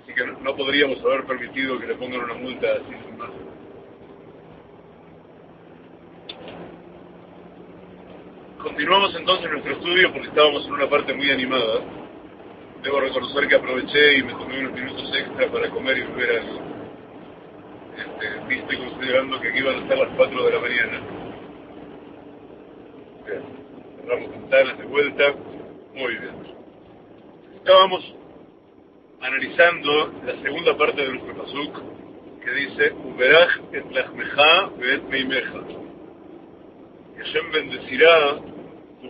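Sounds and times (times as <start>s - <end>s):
car engine hum: 0.0s - 39.0s
road and interior noise: 0.0s - 39.0s.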